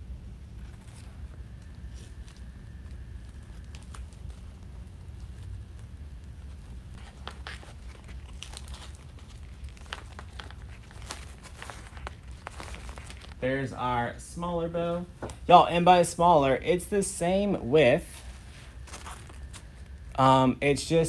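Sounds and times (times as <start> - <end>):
low steady hum: 0.0 - 21.0
ribbon crinkling and rustling: 0.4 - 13.4, 18.0 - 20.2.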